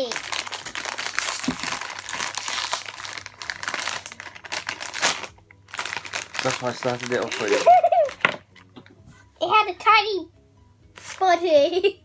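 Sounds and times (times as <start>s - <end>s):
foil bag crinkling: 0.0s - 8.7s.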